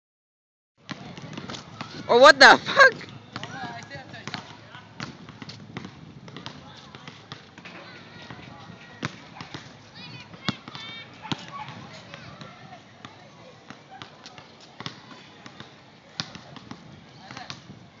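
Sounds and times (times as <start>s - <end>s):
basketball bouncing on asphalt: 0.8s - 2.1s, 2.7s - 17.8s
steady outdoor noise: 0.8s - 18.0s.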